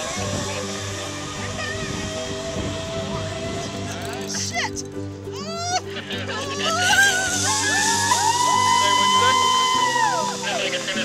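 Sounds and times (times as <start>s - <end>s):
background music with held chords: 0.0s - 11.0s
woman screaming: 5.4s - 10.6s.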